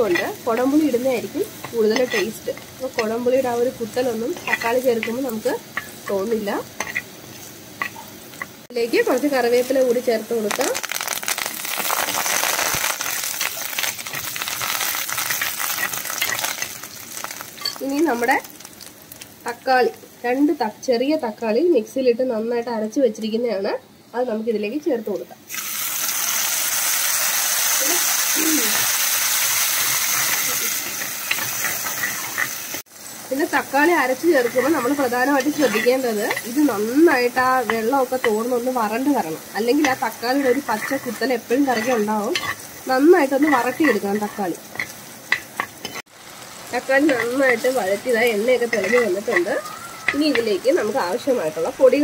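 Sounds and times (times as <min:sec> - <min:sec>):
paste sizzling in hot oil: 0:00.0 - 0:20.5, 0:25.5 - 0:52.0
steel ladle stirring: 0:01.6 - 0:03.2, 0:04.1 - 0:08.0, 0:12.2 - 0:17.8, 0:28.7 - 0:32.8, 0:39.7 - 0:46.1, 0:48.4 - 0:50.7.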